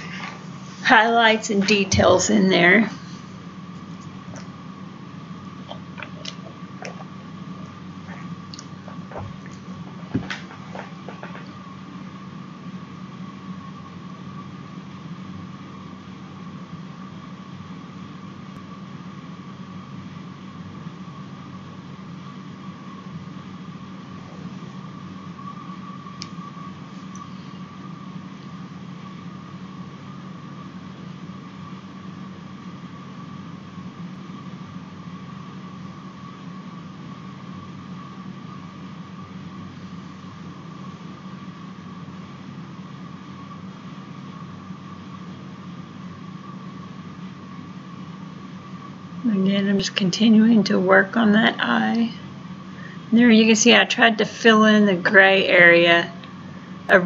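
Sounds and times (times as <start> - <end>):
background hum and hiss: 0.0 - 57.0
faint high whine: 0.0 - 57.0.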